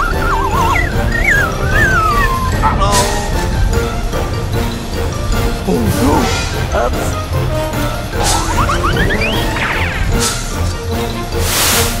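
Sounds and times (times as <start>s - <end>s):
wavering cartoon squeal: 0.0s - 3.3s
background music: 0.0s - 12.0s
air hiss: 11.4s - 12.0s.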